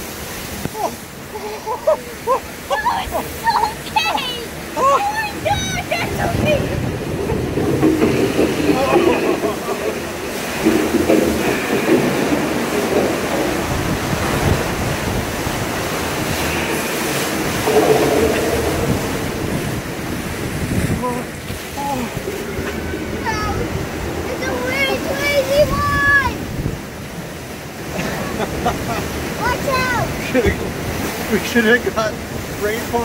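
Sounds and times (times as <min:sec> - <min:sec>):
rushing water: 0:00.0 - 0:33.0
people talking and laughing: 0:00.7 - 0:10.1, 0:27.8 - 0:31.4
deep rumble: 0:06.0 - 0:25.2.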